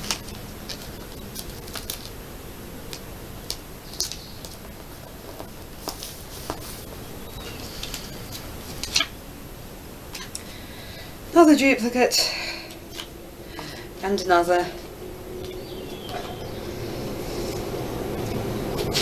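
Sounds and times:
paper crinkle: 0:00.0 - 0:02.2, 0:02.9 - 0:09.0
paper rustling: 0:00.0 - 0:02.2, 0:02.9 - 0:09.1.

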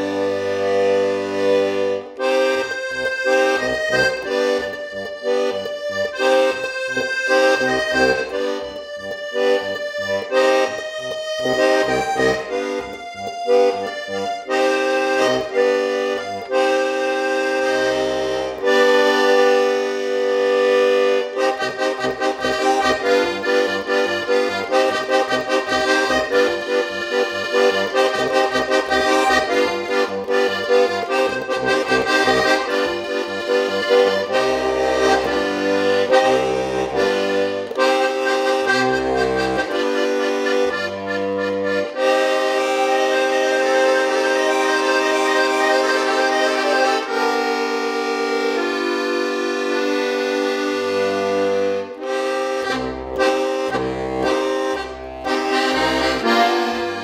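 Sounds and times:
button accordion playing lively tune: 0:00.0 - 0:57.0.

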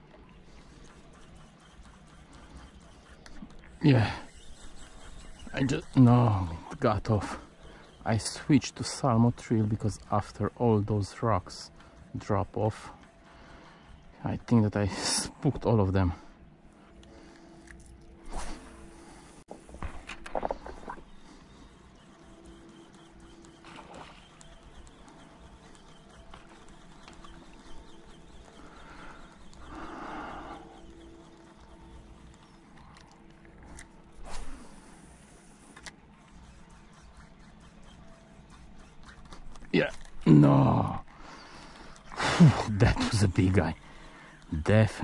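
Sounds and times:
faint hum: 0:00.0 - 0:45.0
river ambience: 0:00.0 - 0:45.0.

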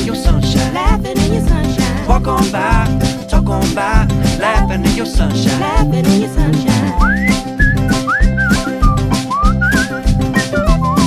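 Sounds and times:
band playing steady beat: 0:02.4 - 0:11.0
whistled melody: 0:06.5 - 0:11.0.

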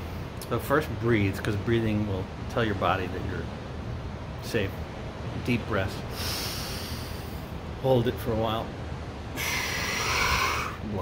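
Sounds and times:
man breathing in deeply: 0:06.1 - 0:07.6, 0:09.4 - 0:10.8.

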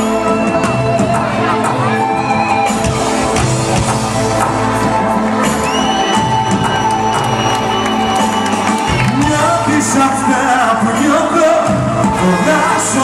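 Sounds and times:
drum beat: 0:00.0 - 0:10.6
audience cheering and shouting: 0:00.0 - 0:13.0
loud live band music: 0:00.0 - 0:13.0.

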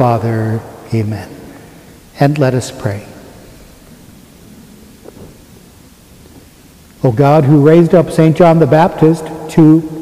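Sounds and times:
low rumble and hiss: 0:00.0 - 0:10.0.

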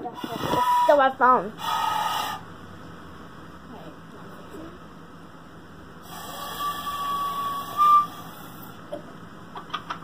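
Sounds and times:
breathy toy flute note: 0:00.2 - 0:01.0, 0:01.6 - 0:02.4, 0:06.0 - 0:08.6.

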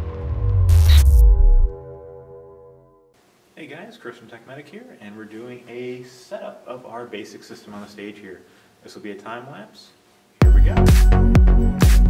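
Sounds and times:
deep bass rumble: 0:00.0 - 0:01.9
static-like hiss: 0:03.2 - 0:10.4.

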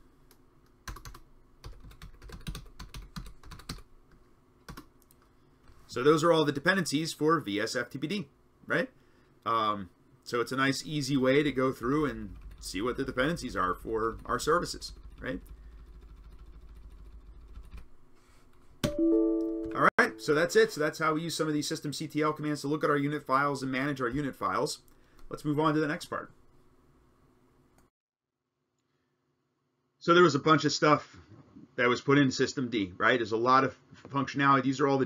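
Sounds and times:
faint low hum: 0:00.0 - 0:27.8
typing on computer keyboard: 0:00.9 - 0:03.9, 0:04.7 - 0:04.9, 0:11.9 - 0:13.4, 0:14.0 - 0:17.8
plucked-string chord: 0:18.9 - 0:20.5.

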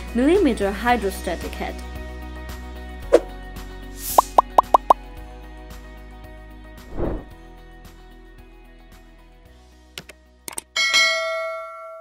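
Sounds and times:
mouse clicks: 0:04.2 - 0:05.0.

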